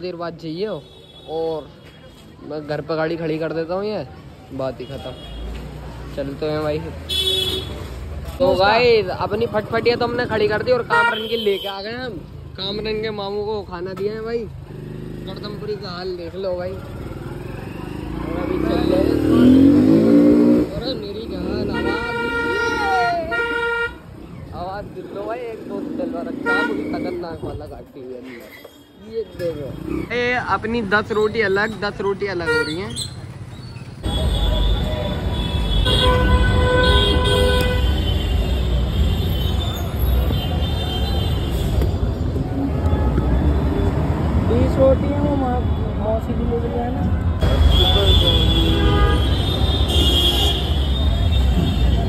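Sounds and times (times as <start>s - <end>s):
street traffic: 0.0s - 52.0s
vehicle drawn-out pitched tone: 16.8s - 21.9s.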